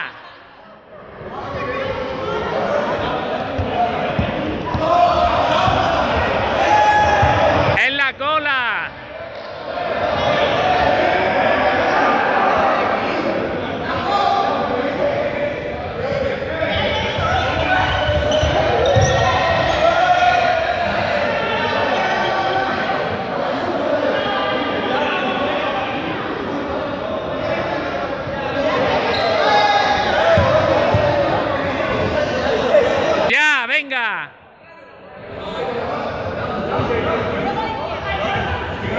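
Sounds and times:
running footsteps on court floor: 3.4s - 7.8s
young people shouting: 4.0s - 7.8s.

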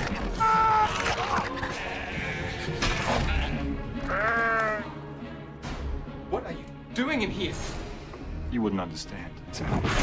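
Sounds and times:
dramatic trailer music: 0.0s - 10.0s
sheep bleating: 1.6s - 2.6s, 3.5s - 5.0s.

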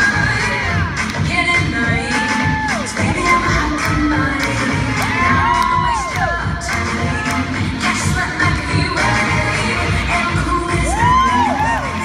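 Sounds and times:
dance music with steady beat: 0.0s - 12.0s
audience cheering and shouting: 1.8s - 3.4s, 4.9s - 7.6s, 10.6s - 12.0s
long whoops: 5.2s - 6.4s, 10.8s - 12.0s.

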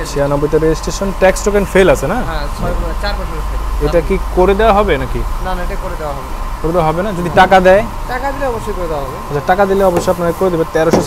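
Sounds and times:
steady low rumble: 0.0s - 10.8s
man speaking: 0.0s - 11.0s.

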